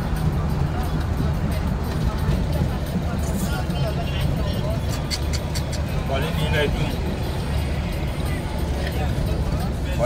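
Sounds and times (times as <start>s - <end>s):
car engine and tyre rumble: 0.0s - 10.0s
voices: 0.0s - 10.0s.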